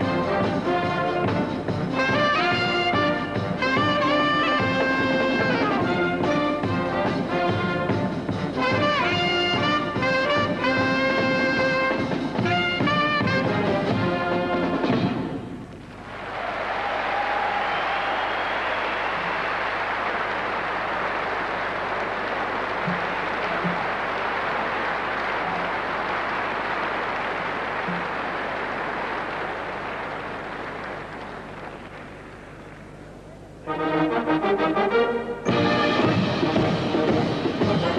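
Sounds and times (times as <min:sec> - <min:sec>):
brass band playing swing: 0:00.0 - 0:15.4, 0:33.6 - 0:37.9
audience applauding: 0:15.8 - 0:33.1.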